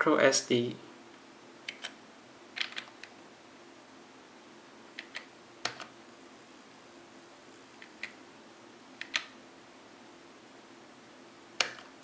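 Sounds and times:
computer keyboard keys clicking: 1.7 - 2.0, 2.6 - 3.1, 5.0 - 5.9, 9.0 - 9.3, 11.6 - 11.9.

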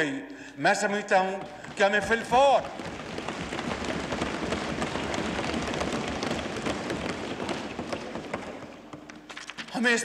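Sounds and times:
desk thumping: 1.3 - 9.4
people clapping: 1.3 - 9.5.

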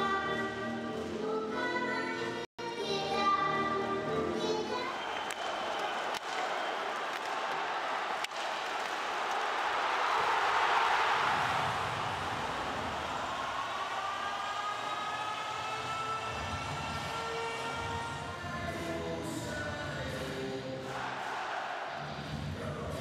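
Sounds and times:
arena crowd noise: 2.2 - 23.0.

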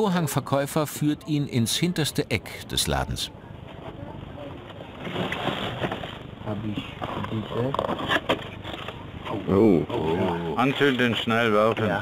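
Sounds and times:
men talking in low voices: 0.0 - 4.9, 6.4 - 8.0, 9.2 - 12.0.

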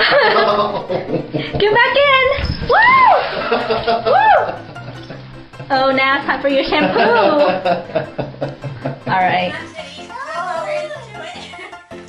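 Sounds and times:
person whooping: 2.7 - 3.3, 4.1 - 4.6.

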